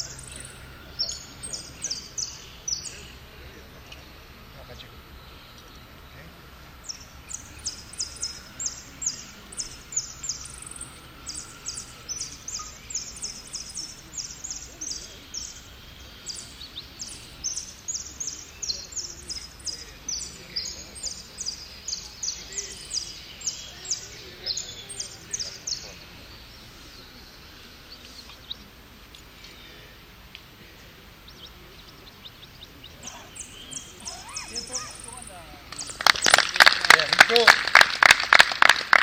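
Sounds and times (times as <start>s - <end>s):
bird singing rapid high notes: 31.3s - 36.1s.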